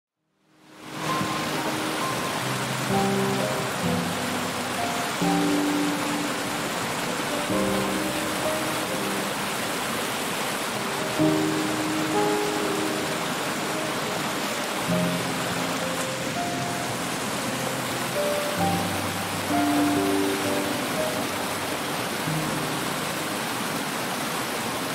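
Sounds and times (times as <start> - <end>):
slow background music: 0.6 - 10.0, 10.6 - 23.6
creek rushing over rocks: 0.6 - 24.9.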